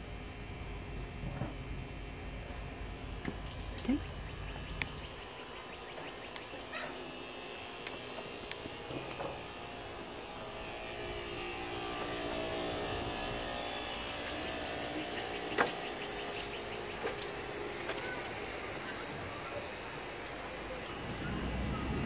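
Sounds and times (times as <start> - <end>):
distant machine humming: 0.0 - 22.0.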